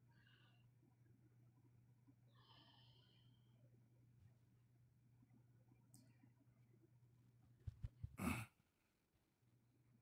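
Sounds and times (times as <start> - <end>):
person sighing: 8.2 - 8.6.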